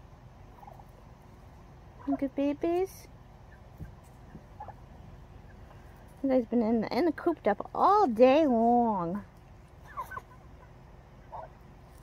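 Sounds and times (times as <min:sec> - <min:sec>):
low outdoor background: 0:00.0 - 0:12.0
turkey call: 0:03.5 - 0:04.8, 0:09.8 - 0:11.6.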